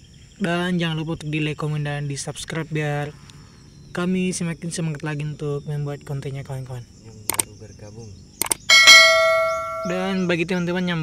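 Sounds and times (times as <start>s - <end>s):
sharp mouse clicks: 7.3s - 7.5s, 8.4s - 8.7s
bell ding: 8.7s - 10.3s.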